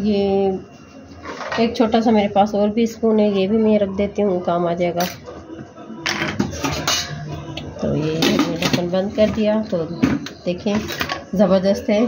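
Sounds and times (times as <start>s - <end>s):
spoons clinking on steel bowls: 5.0s - 5.2s, 6.1s - 7.2s.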